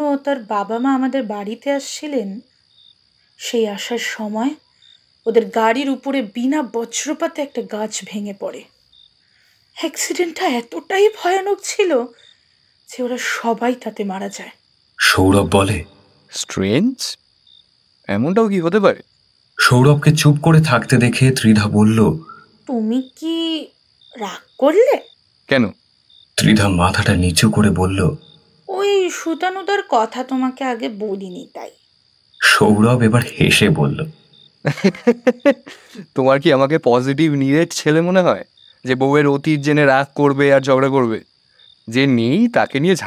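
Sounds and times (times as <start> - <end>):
crickets chirring: 0.0 - 43.0
person speaking: 15.0 - 17.2, 19.6 - 22.4, 26.4 - 29.6, 32.4 - 34.1, 34.7 - 36.6.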